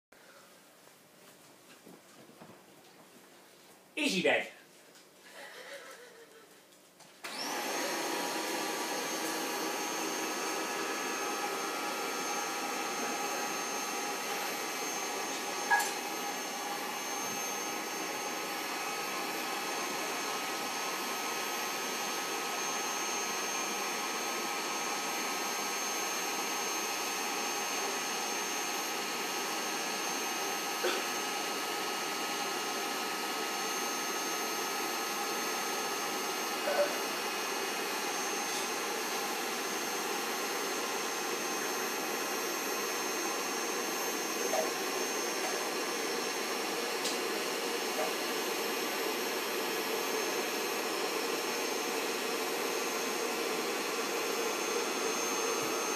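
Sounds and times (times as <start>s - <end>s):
electric air pump running: 7.2s - 55.9s.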